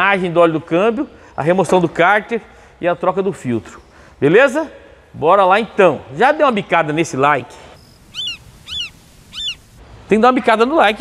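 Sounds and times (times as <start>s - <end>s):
bird calling: 7.8s - 9.8s.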